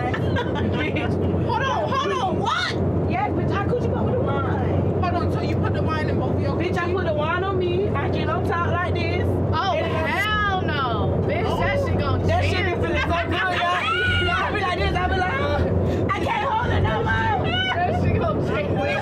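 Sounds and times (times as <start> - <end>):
women talking and exclaiming: 0.0 - 19.0.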